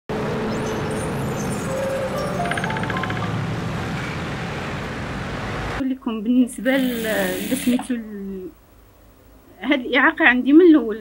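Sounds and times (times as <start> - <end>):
cars driving past: 0.1 - 5.8.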